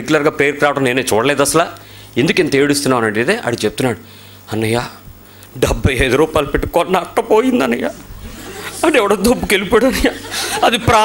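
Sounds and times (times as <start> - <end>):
man talking into a microphone: 0.0 - 8.0, 8.8 - 11.0.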